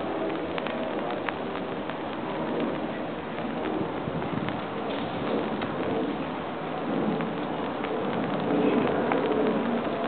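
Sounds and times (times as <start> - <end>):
light drop ticks: 0.0 - 10.0
rain hissing: 0.0 - 10.0.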